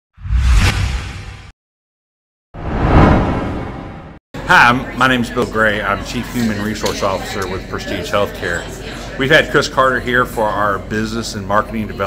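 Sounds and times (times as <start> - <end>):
whoosh: 0.2 - 1.5, 2.6 - 4.2.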